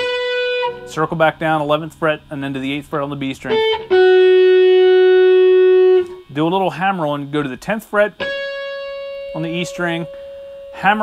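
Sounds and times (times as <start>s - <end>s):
electric guitar held note: 8.2s - 11.0s.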